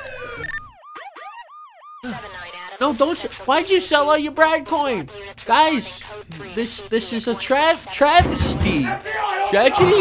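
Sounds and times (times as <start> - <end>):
police siren yelp: 0.0 - 2.8.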